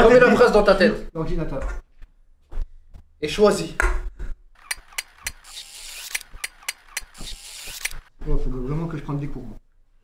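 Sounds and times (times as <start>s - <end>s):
sharp clicks: 4.6s - 8.1s.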